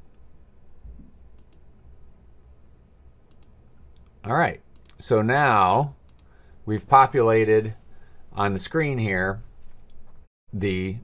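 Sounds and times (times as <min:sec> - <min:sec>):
low room hum: 0:00.0 - 0:11.0
computer mouse clicking: 0:01.3 - 0:01.6, 0:03.3 - 0:05.0, 0:06.0 - 0:06.3.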